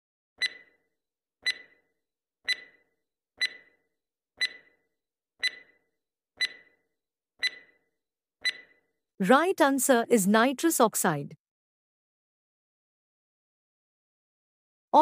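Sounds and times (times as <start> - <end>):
clock ticking: 0.4 - 0.7, 1.4 - 1.8, 2.5 - 3.8, 4.4 - 4.8, 5.4 - 5.8, 6.4 - 6.8, 7.4 - 7.7, 8.4 - 8.7.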